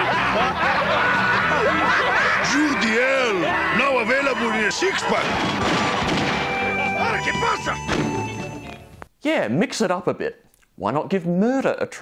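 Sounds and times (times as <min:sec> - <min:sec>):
commercial music: 0:00.0 - 0:08.9
thud: 0:05.2 - 0:06.5, 0:07.9 - 0:08.2.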